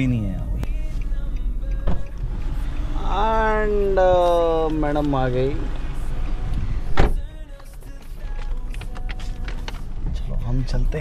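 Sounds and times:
outside noise: 0.0s - 11.0s
car door shutting thump: 6.9s - 7.3s.

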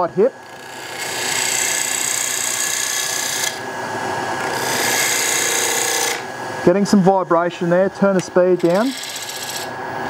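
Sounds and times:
wood lathe gouge cutting hiss: 4.6s - 7.8s, 8.4s - 9.7s.

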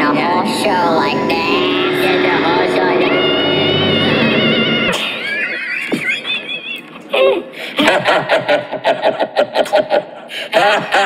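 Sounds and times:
falling pitch glides: 0.0s - 7.4s
warbling effected voice: 0.0s - 8.0s.

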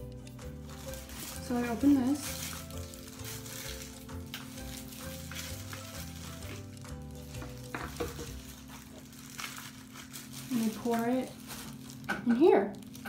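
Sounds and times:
plastic gloves rustling: 0.0s - 13.0s
soft background music: 0.0s - 13.0s.

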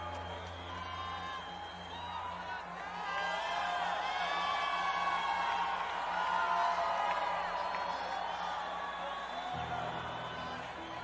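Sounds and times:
crowd cheering and whooping: 0.0s - 11.0s.

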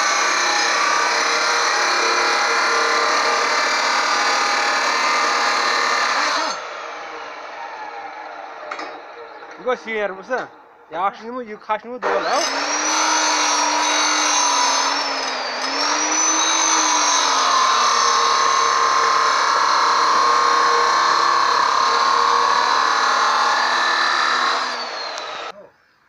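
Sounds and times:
abrasive disc grinding metal: 0.0s - 7.5s, 12.0s - 25.5s
cut-off saw motor whine: 0.0s - 10.8s, 12.0s - 25.6s.

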